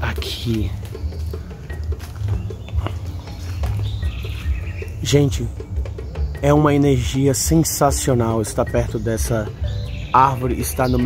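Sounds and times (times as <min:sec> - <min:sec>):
birds chirping faintly: 0:00.0 - 0:11.0.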